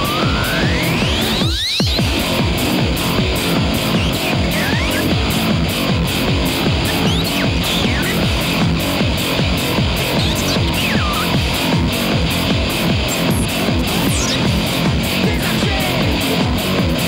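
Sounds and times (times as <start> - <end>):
sliding electronic tones: 0.0 - 15.8
live rock band playing: 0.0 - 17.0.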